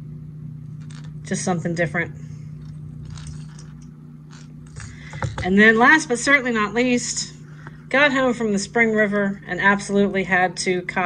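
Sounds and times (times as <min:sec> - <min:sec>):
steady low hum: 0:00.0 - 0:11.0
plastic lure handling noise: 0:00.8 - 0:01.2, 0:02.6 - 0:05.4.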